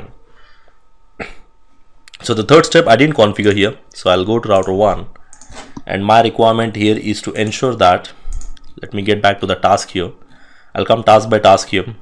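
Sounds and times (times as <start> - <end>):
person coughing: 1.2 - 1.5.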